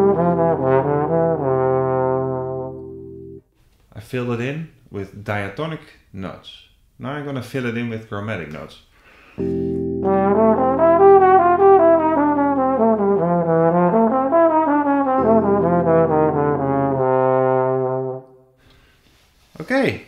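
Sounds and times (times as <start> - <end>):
held backing chord: 0.0 - 3.4, 9.4 - 18.5
trombone playing jazz line: 0.0 - 3.4, 9.4 - 18.5.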